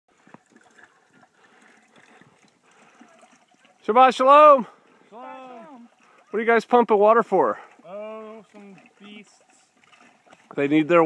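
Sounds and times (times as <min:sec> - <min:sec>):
faint running water: 0:00.1 - 0:11.0.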